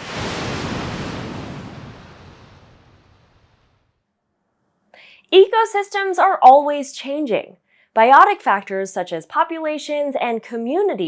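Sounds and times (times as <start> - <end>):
whoosh sound effect: 0.0 - 3.9.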